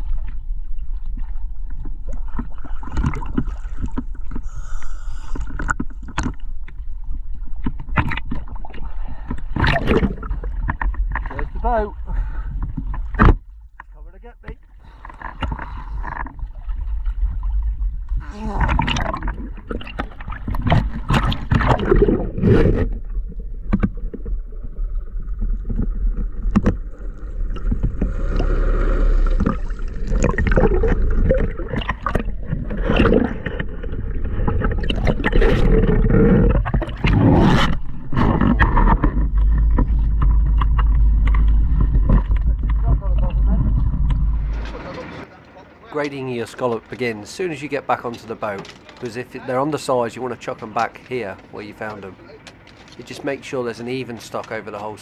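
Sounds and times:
sea water splashing: 0.0s - 55.0s
boat engine running low: 8.5s - 55.0s.

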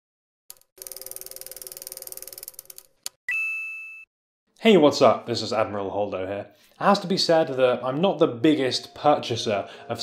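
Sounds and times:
fast mechanical ticking: 0.5s - 2.9s.

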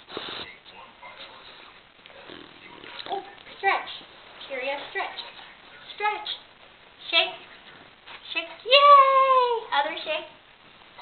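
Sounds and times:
dog sniffing: 0.0s - 3.5s.

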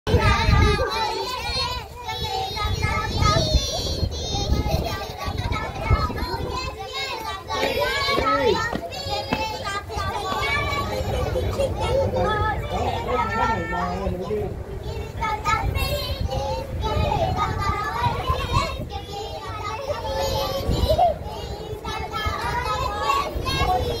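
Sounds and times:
children talking and calling out: 0.1s - 24.0s
steady low rumble: 0.1s - 24.0s.

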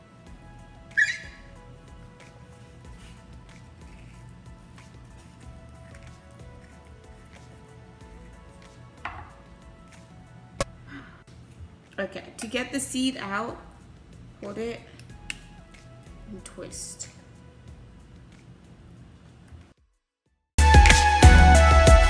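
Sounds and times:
faint background music: 0.0s - 19.8s
knife knocking on board: 9.0s - 9.4s.

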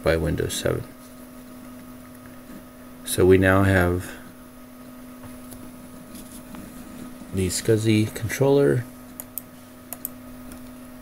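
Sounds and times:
computer humming: 0.0s - 11.0s.

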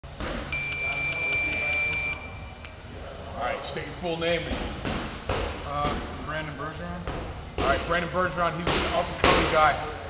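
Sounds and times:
high-pitched electronic beep: 0.5s - 2.5s.

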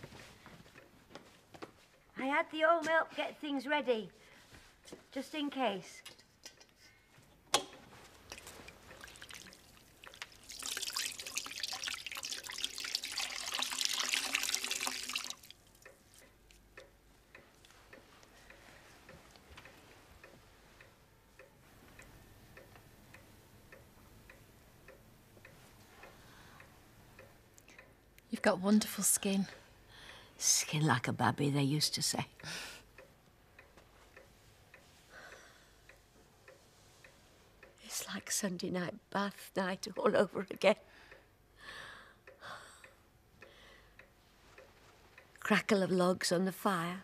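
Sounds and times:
water splashing in a china bowl: 8.3s - 15.8s
clock ticking: 15.6s - 46.8s.

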